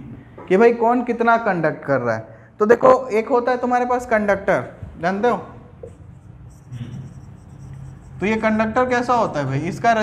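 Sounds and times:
marker pen writing on whiteboard: 5.7 - 10.0.

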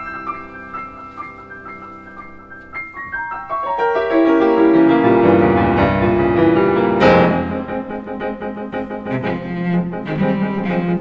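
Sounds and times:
piano chords: 0.0 - 11.0
cello bowing sustained notes: 5.2 - 11.0.

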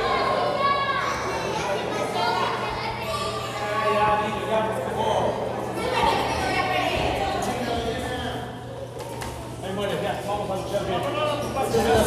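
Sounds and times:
people shouting and talking: 0.0 - 12.0.

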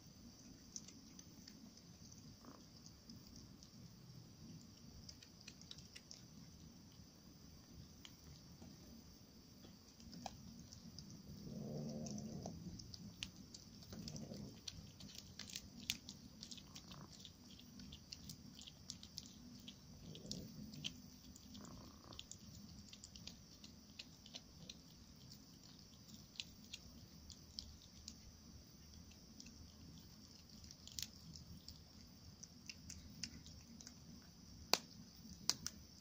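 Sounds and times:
cat chewing with crunching: 0.0 - 36.0
cat growling low: 2.0 - 3.1, 10.0 - 26.9.

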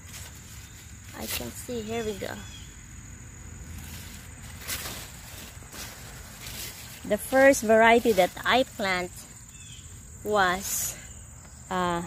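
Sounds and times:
faint rustles: 0.0 - 2.6, 3.6 - 11.1
insects trilling: 0.0 - 12.0.

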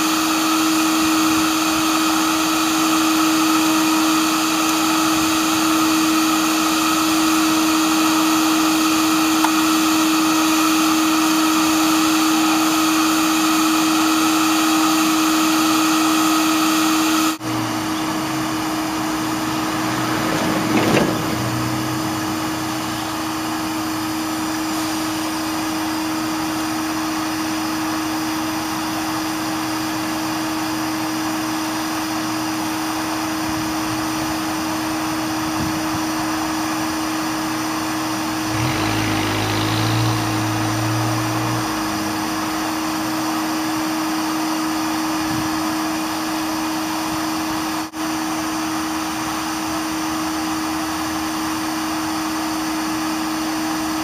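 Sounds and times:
vacuum motor humming: 0.0 - 46.6.

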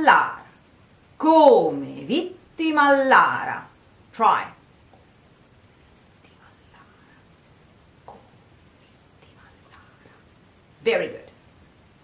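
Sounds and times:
woman speaking: 0.0 - 0.6, 1.2 - 4.6, 10.8 - 11.4
faint whispering: 6.2 - 7.4, 8.8 - 10.4.

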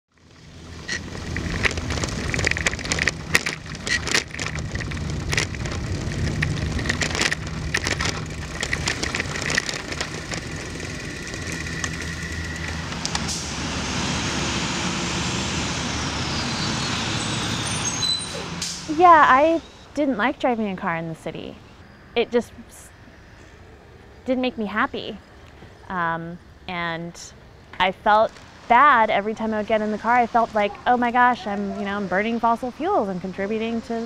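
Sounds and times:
motor vehicles running: 0.1 - 34.0
sharp clicks and rattles: 0.2 - 13.4
high whine falling in pitch: 0.3 - 20.0.

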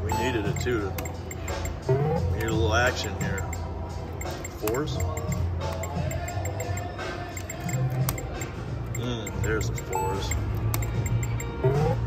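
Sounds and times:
electronic machine tones: 0.0 - 2.3, 3.0 - 12.0
casino background music: 0.0 - 12.0
video poker dealing sounds: 0.0 - 12.0.

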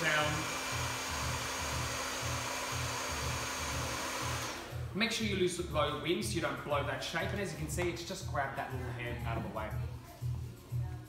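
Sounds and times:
hair dryer blowing: 0.0 - 5.0
background music with low beat: 0.0 - 11.0.

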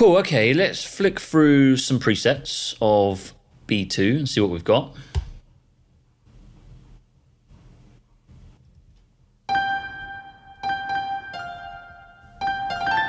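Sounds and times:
piano melody with reverb: 9.5 - 13.0.

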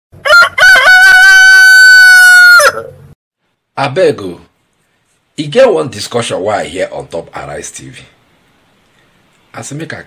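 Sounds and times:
rooster crowing: 0.2 - 3.0.

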